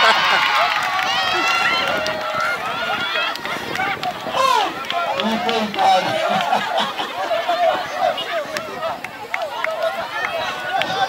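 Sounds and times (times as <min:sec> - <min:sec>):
children and adults calling out: 0:00.0 - 0:11.0.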